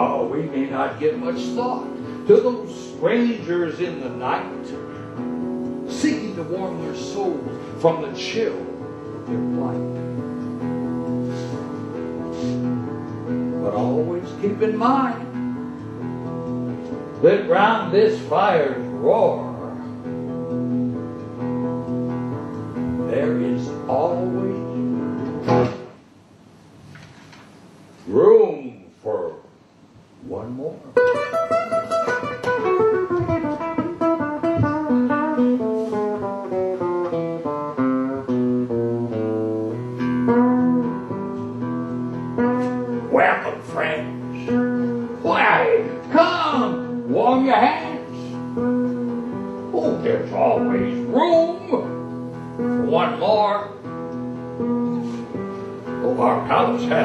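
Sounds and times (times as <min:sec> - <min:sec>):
acoustic guitar playing: 0:00.0 - 0:26.9, 0:30.9 - 0:57.0.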